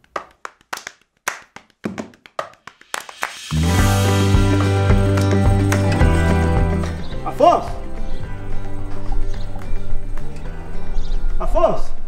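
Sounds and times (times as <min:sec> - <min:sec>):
sharp percussive hits: 0:01.8 - 0:09.0.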